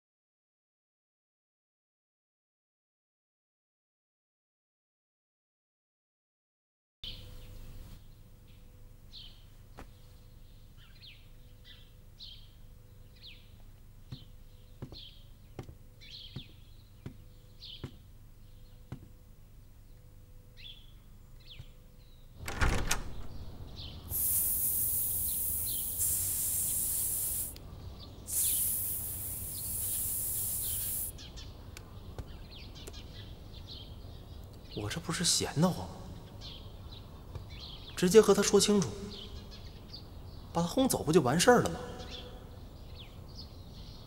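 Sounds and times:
bird chirping: 7.0s - 44.0s
outdoor ambience: 7.0s - 44.0s
door swung open with knock: 22.4s - 24.0s
loud high hiss: 23.7s - 27.6s, 28.3s - 31.2s.

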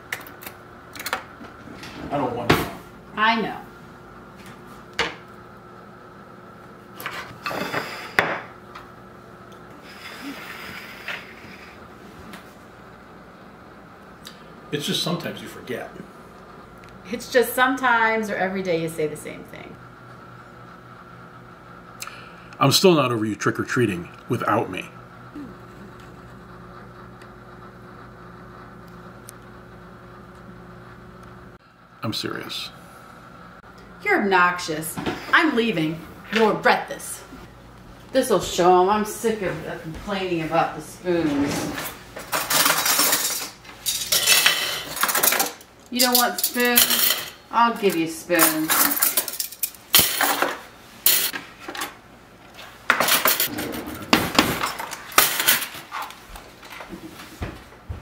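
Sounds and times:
room hum: 0.0s - 58.0s
metal cutlery clattering: 42.3s - 47.4s, 48.4s - 51.9s, 52.9s - 56.1s.

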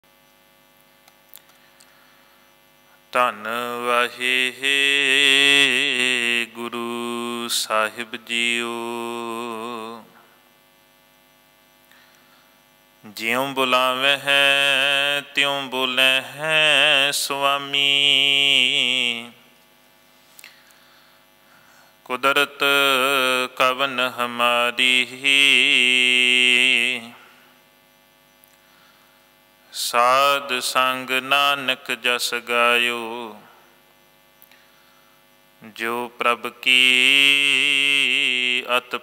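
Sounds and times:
faint electrical hum: 0.0s - 39.0s
man chanting: 3.1s - 10.2s, 13.0s - 19.4s, 22.1s - 27.3s, 29.7s - 33.6s, 35.6s - 39.0s.

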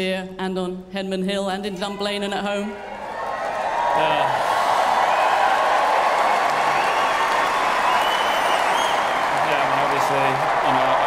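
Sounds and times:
crowd cheering and applauding: 2.6s - 11.0s
high whistles: 6.7s - 9.4s.

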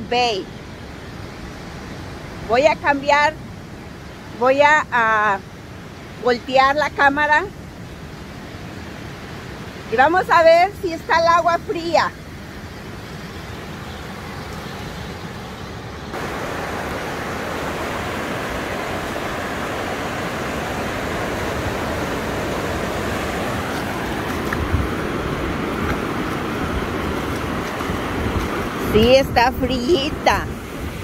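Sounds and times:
ocean surf washing up beach: 0.0s - 31.0s.

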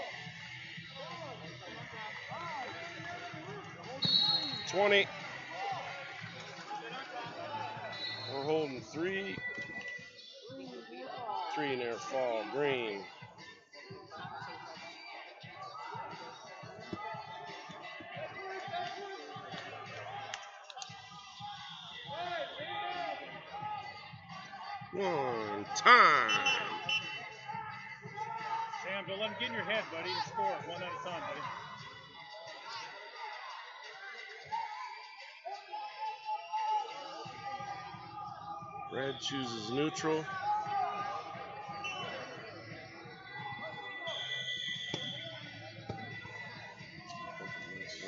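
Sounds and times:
background music: 0.0s - 48.0s
voices echoing in a hall: 0.0s - 48.0s
men shouting high-pitched calls: 25.0s - 31.6s.

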